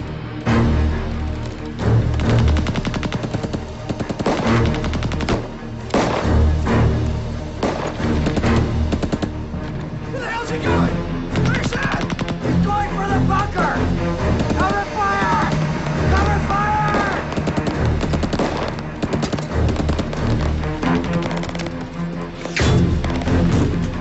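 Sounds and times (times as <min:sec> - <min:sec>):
film score music: 0:00.0 - 0:24.0
machine-gun fire: 0:02.2 - 0:06.4, 0:11.4 - 0:12.4, 0:16.9 - 0:21.8.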